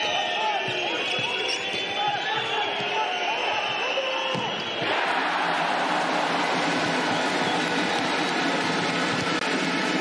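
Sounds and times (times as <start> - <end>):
arena crowd noise: 0.0 - 10.0
shoe squeaks: 0.5 - 2.8.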